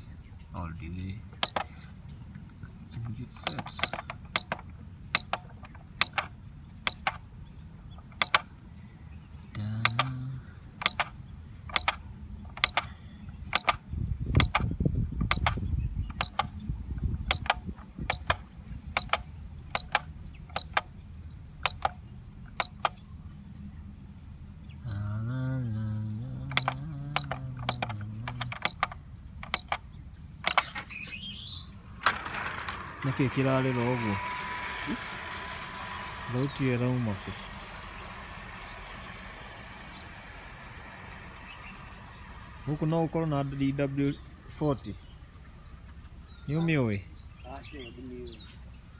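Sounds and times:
keypad beeps: 1.4 - 1.6, 3.4 - 5.4, 6.0 - 7.2, 8.2 - 8.4, 9.8 - 10.1, 10.8 - 11.1, 11.7 - 12.0, 12.6 - 12.9, 13.5 - 13.8, 14.4 - 14.6, 15.3 - 16.5, 17.3 - 18.4, 19.0 - 20.8, 21.6 - 21.9, 22.6 - 22.9, 26.5 - 29.8.

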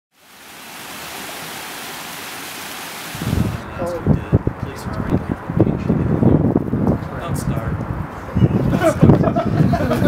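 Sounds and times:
steady hiss: 0.2 - 3.7.

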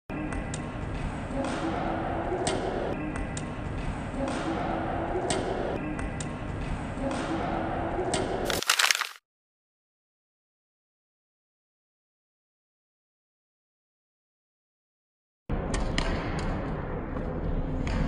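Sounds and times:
reverberant hall noise: 0.2 - 8.4.

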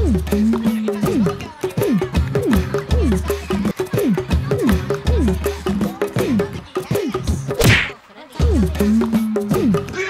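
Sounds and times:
background music: 0.0 - 10.0
fight hit whack: 7.6 - 8.0.

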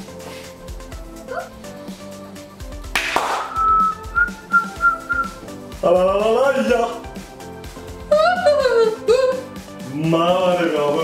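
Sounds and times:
background music: 0.0 - 11.0
woman whistling a held note: 3.5 - 5.4.

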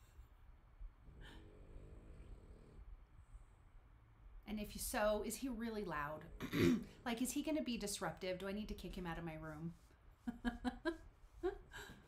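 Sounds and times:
dog snoring: 1.0 - 3.0.

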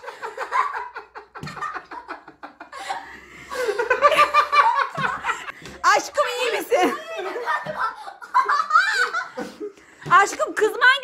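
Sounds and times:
people laughing heartily: 0.0 - 10.1.

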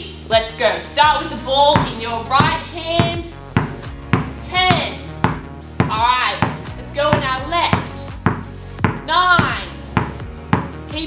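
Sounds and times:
music with singing voice: 0.0 - 11.0
basketball bouncing on hard floor: 1.7 - 10.9.

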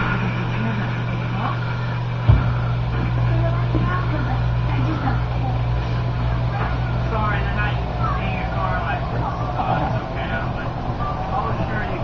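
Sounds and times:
faint voices: 0.0 - 12.0
steady low hum: 0.0 - 12.0.

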